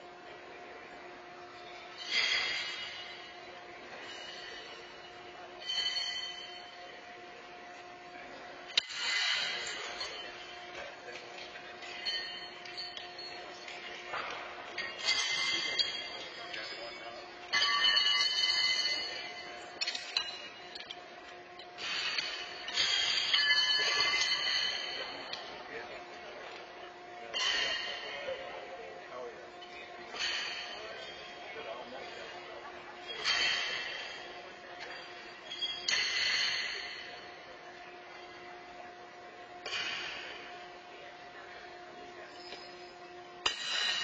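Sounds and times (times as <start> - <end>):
electrical hum: 0.0 - 44.0
horseshoes clanging on metal: 4.0 - 7.0, 8.7 - 21.0, 21.8 - 25.5, 29.6 - 31.4, 33.0 - 37.3, 39.6 - 40.4, 42.3 - 44.0.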